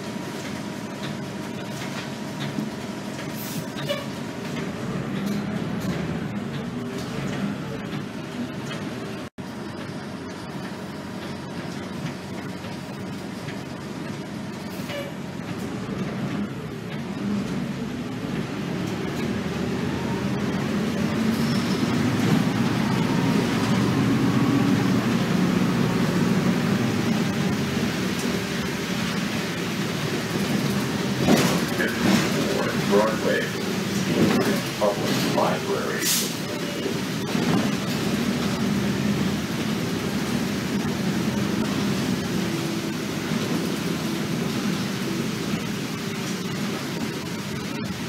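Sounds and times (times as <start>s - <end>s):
bus engine and road rumble: 0.0s - 48.0s.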